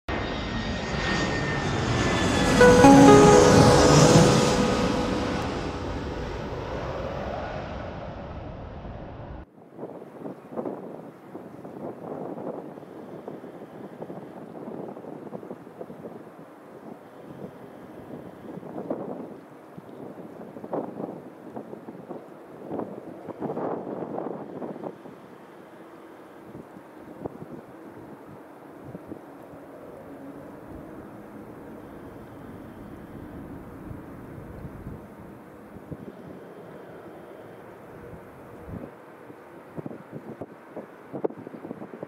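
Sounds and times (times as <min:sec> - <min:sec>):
faint jet engines: 0:00.1 - 0:09.5, 0:24.3 - 0:42.0
intro music: 0:02.3 - 0:07.2.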